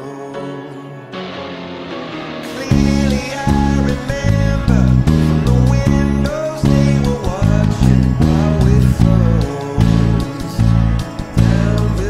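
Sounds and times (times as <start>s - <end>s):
man singing: 0.0s - 1.6s, 2.4s - 12.0s
rock band recording: 0.0s - 12.0s
bass guitar played fingerstyle: 2.2s - 12.0s.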